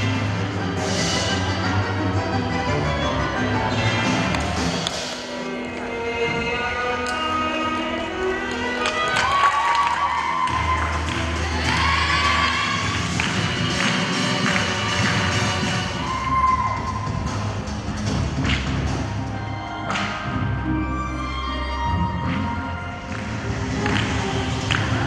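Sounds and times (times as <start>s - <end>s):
music over speakers: 0.0s - 25.0s.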